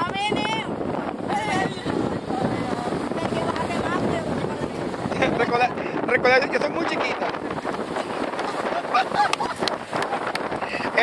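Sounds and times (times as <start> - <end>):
faint voices: 0.0 - 8.9
wind on microphone: 0.0 - 11.0.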